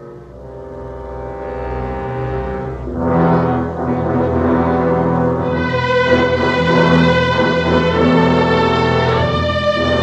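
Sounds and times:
orchestral brass chords: 0.0s - 10.0s.

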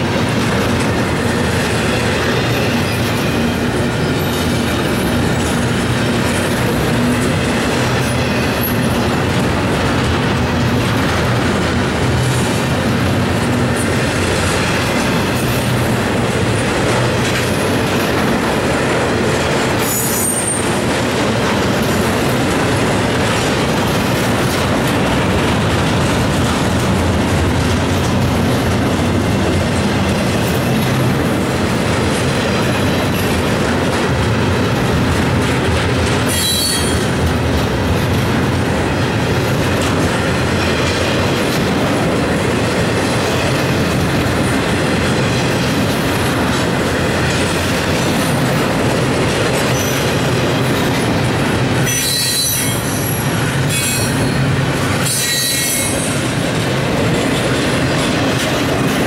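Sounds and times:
freight train rumbling past: 0.0s - 59.0s
high-pitched wheel squeals: 36.3s - 37.1s, 51.8s - 54.4s, 55.0s - 56.0s.

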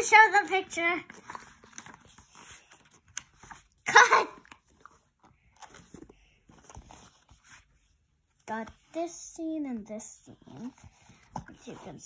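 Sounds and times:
book pages rustling and turning: 0.0s - 12.0s.

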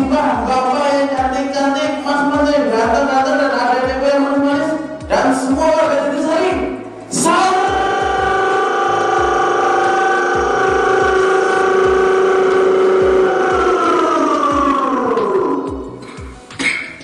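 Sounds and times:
low beat: 3.7s - 16.8s
man singing long high note: 7.1s - 15.9s.

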